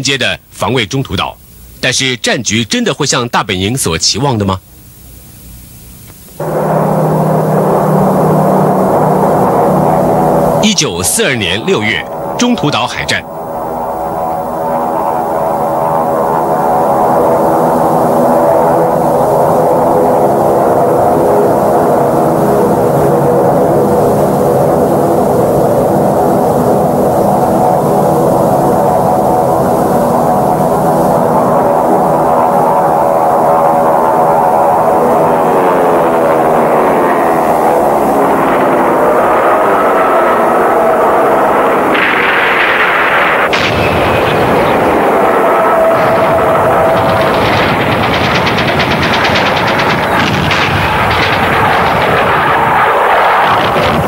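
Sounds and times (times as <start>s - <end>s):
propeller aircraft engines droning: 4.6s - 54.0s.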